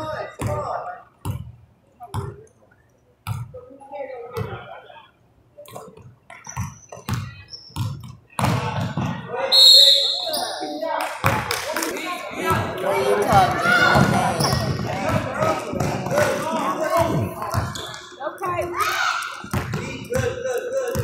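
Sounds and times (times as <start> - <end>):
voices echoing in a hall: 8.2 - 21.0
short high squeal: 9.6 - 10.7.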